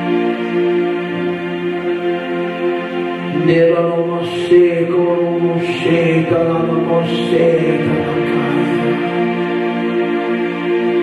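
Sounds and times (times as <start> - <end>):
slow devotional music: 0.0 - 11.0
man chanting: 3.3 - 9.3.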